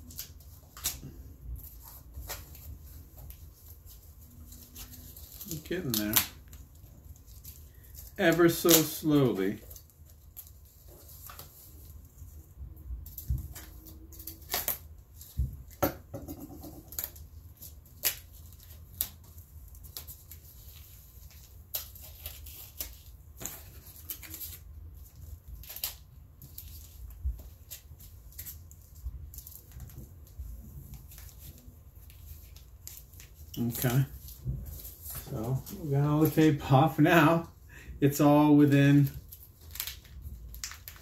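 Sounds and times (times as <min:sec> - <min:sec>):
tape peeling off plastic: 0:13.1 - 0:15.8, 0:16.9 - 0:30.1, 0:39.2 - 0:41.0.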